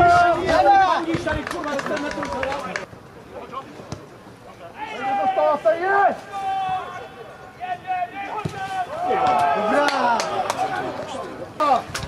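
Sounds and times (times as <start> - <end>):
people shouting: 4.8 - 11.0.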